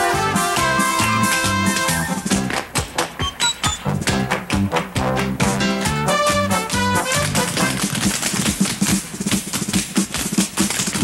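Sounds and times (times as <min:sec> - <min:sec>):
brassy show band: 0:00.0 - 0:08.0
tap steps on wooden stage: 0:00.5 - 0:11.0.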